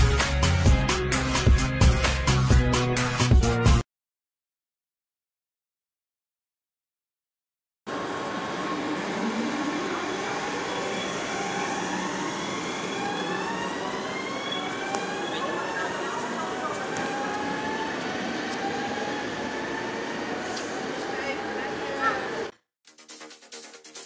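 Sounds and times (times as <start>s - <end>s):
electric train motor whine: 7.9s - 22.5s.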